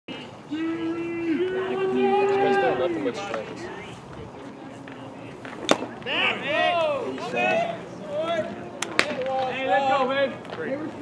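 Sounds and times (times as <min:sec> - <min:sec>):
faint background chatter: 0:00.1 - 0:11.0
baseball bat crack: 0:05.4 - 0:06.1, 0:08.8 - 0:09.5.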